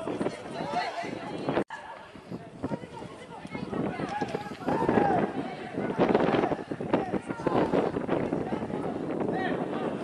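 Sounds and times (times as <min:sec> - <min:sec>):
people shouting: 0:04.6 - 0:07.7.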